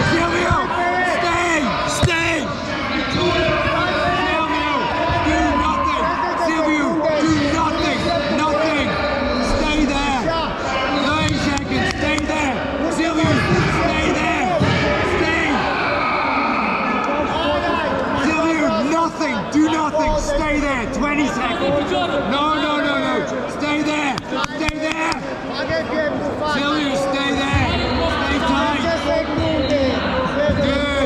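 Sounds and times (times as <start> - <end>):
people talking and calling out: 0.0 - 31.0.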